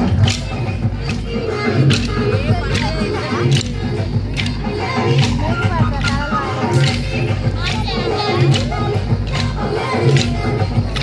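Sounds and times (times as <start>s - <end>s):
folk dance song over speakers: 0.0s - 11.0s
voices: 0.0s - 11.0s.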